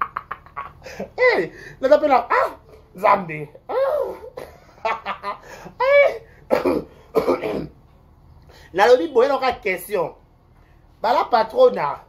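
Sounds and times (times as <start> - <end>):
man making drawn-out vocal sounds: 3.7 - 4.4.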